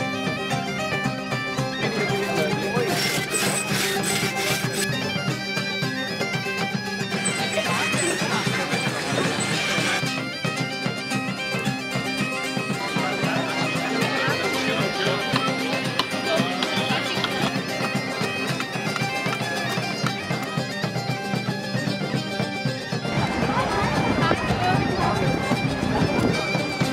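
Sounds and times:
bagpipe chanter melody: 0.0 - 26.9
bagpipe drone: 0.0 - 26.9.

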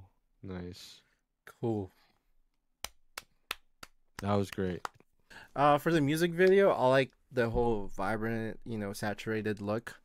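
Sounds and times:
person clapping: 2.8 - 5.0.

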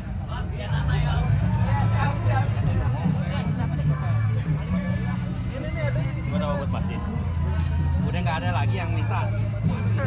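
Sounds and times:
background music with bass line: 0.0 - 10.0
indistinct voices talking: 0.0 - 10.0.

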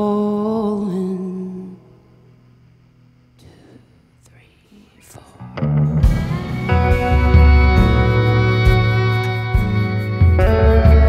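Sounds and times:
guitar strumming: 5.4 - 11.0.

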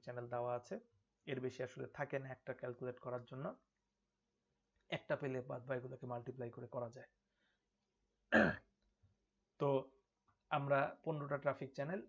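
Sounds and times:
man clearing his throat: 8.3 - 8.7.

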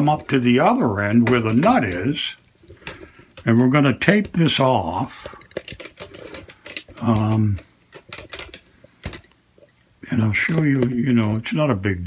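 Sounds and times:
small objects clicking on workbench: 2.8 - 9.4.

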